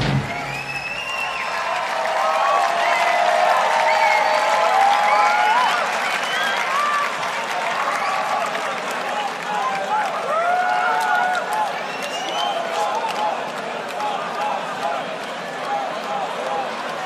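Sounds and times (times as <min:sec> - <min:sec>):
crowd applauding and cheering: 0:00.0 - 0:17.0.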